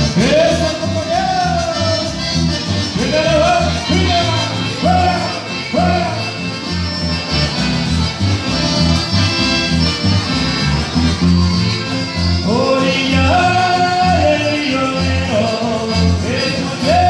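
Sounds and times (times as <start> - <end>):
accordion melody: 0.0 - 17.0
pulsing bass line: 0.0 - 17.0.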